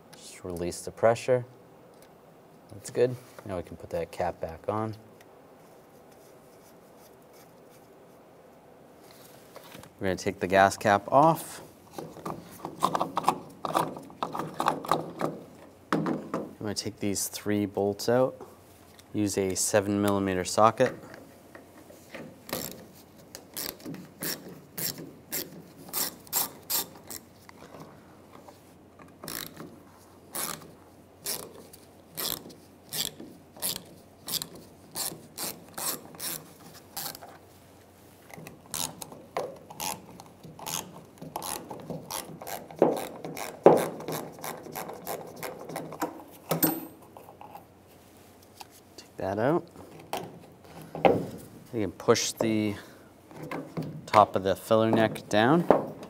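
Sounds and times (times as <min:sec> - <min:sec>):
hand ratchet clicking: 0:23.4 - 0:27.3, 0:29.2 - 0:29.7, 0:32.2 - 0:37.2, 0:38.4 - 0:45.2.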